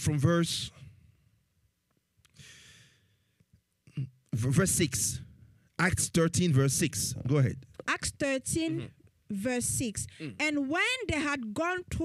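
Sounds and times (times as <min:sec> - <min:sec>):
man breathing into microphone: 0:02.3 - 0:03.4.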